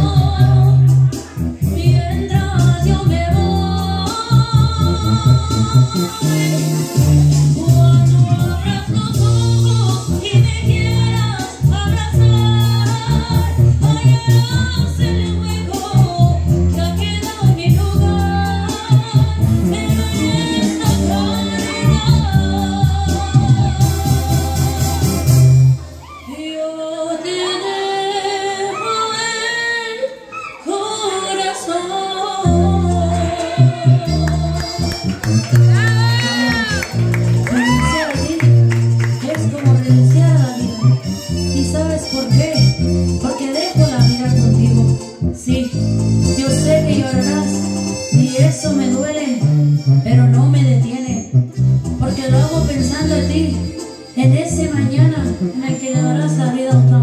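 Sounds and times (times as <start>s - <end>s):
woman singing into microphone: 0.0s - 25.2s, 26.2s - 41.0s, 41.6s - 51.3s, 52.0s - 57.0s
deep bass notes: 0.0s - 25.9s, 32.4s - 57.0s
karaoke backing track: 0.0s - 57.0s.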